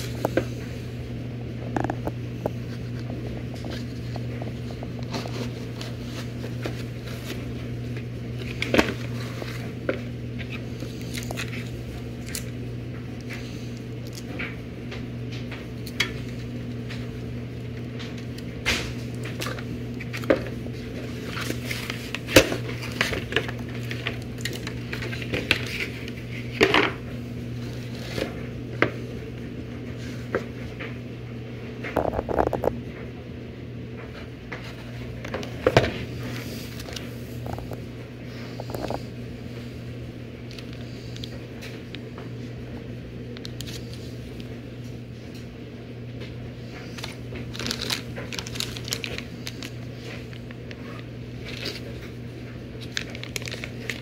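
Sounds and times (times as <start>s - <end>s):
steady low hum: 0.0s - 54.0s
rustling of cardboard and plastic: 1.7s - 12.5s, 17.8s - 29.0s, 46.6s - 54.0s.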